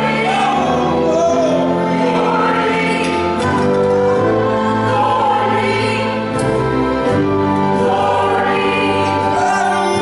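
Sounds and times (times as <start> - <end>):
group singing a worship song: 0.0 - 10.0.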